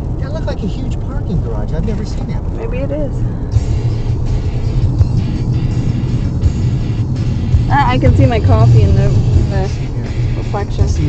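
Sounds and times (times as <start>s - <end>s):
car engine and road noise: 0.0s - 11.0s
music playing: 0.0s - 11.0s.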